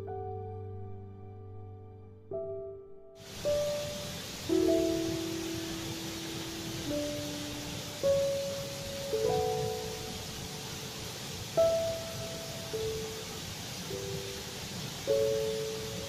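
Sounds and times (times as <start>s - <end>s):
slow relaxing piano music: 0.0s - 16.0s
soft hiss: 3.2s - 16.0s.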